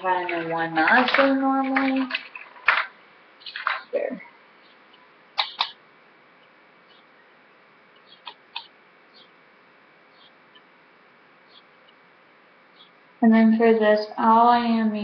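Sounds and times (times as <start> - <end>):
low steady hiss: 0.0 - 15.0.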